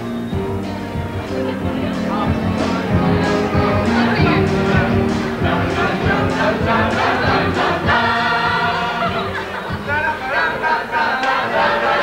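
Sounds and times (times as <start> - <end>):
choir singing with accompaniment: 0.2 - 12.0.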